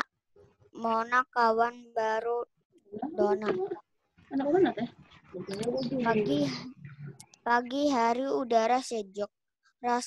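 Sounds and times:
child reading aloud: 0.8 - 2.5, 5.6 - 6.7, 7.4 - 10.0.

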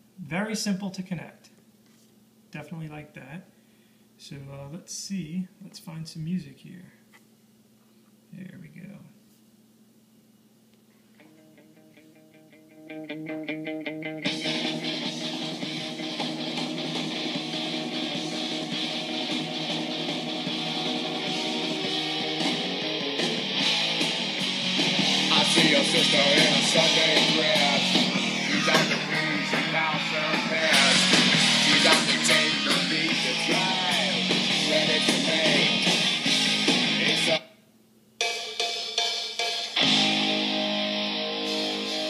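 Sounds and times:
rock music on small speaker: 11.2 - 37.5, 38.2 - 42.0.

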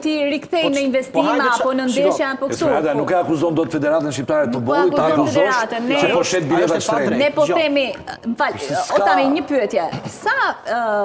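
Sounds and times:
voices talking over one another: 0.6 - 2.5.

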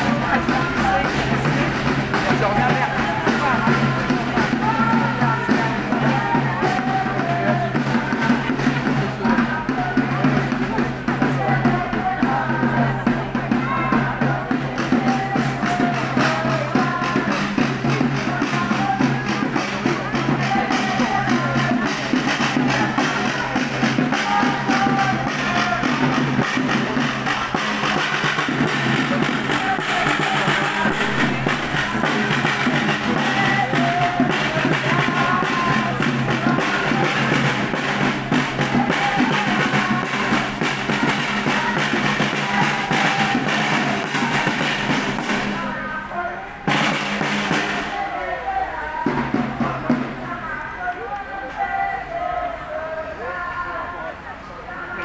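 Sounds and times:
music: 0.0 - 52.0
crowd voices and chatter: 0.0 - 55.0
snare drum beating: 14.7 - 45.6.

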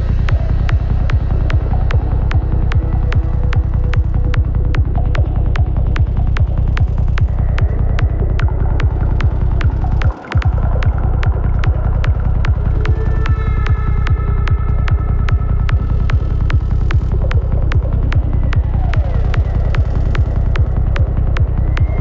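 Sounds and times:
psytrance kick drum and bassline: 0.0 - 22.0.

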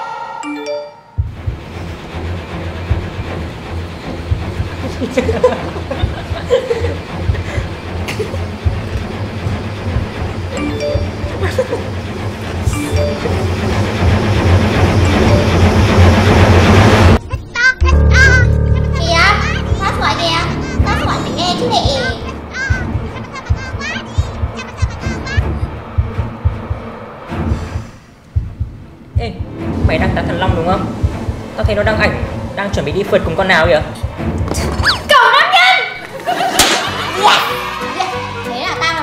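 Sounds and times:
background music: 0.0 - 39.0.

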